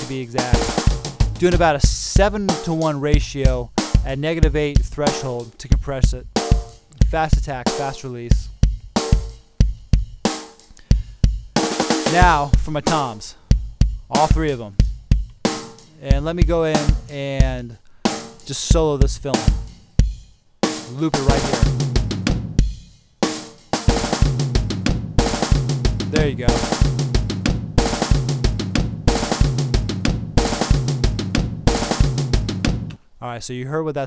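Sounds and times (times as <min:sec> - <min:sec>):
kick snare and hi-hat spill: 0:00.0 - 0:33.0
rock drum kit beat: 0:00.0 - 0:33.0.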